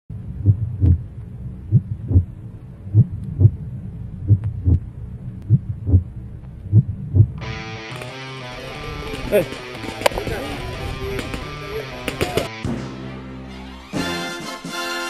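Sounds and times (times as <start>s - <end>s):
heartbeat thumps: 0.1s - 7.4s
low drone: 0.1s - 14.0s
guitar music: 7.4s - 13.8s.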